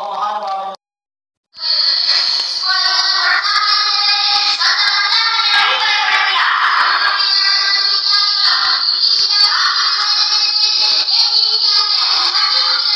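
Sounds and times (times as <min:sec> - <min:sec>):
boy singing over loudspeaker: 0:01.6 - 0:12.9.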